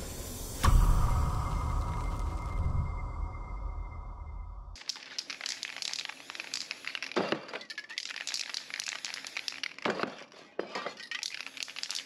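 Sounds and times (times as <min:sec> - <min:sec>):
spray paint can hissing: 0:04.8 - 0:10.4, 0:11.0 - 0:12.0.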